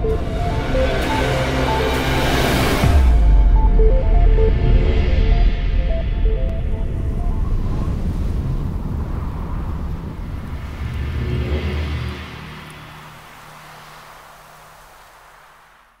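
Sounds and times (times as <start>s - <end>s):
heavy low rumble: 0.0s - 13.6s.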